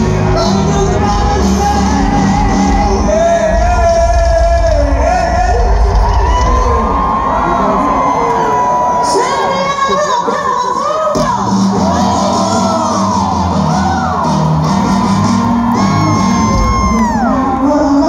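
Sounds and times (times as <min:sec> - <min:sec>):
bass line: 0:00.0 - 0:07.9, 0:11.2 - 0:18.0
crowd cheering and whooping: 0:00.0 - 0:10.3, 0:11.1 - 0:18.0
live rock band: 0:00.0 - 0:18.0.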